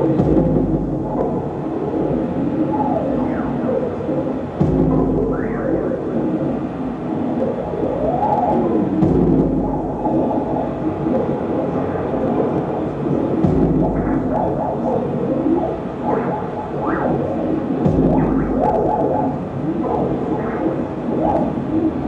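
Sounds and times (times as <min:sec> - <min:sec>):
electronic drone of sliding tones: 0:00.0 - 0:22.0
low rumbling swells: 0:00.0 - 0:22.0.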